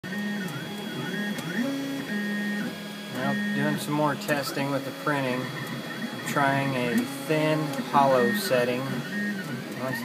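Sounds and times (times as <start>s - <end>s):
stepper motors whining: 0.1s - 10.0s.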